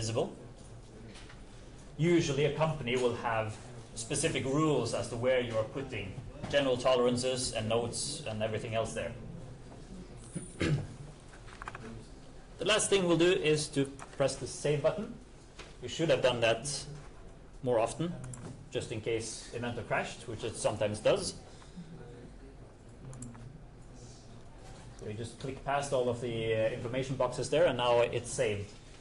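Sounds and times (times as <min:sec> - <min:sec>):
low steady room hum: 0:00.0 - 0:29.0
man coughing: 0:10.4 - 0:11.0.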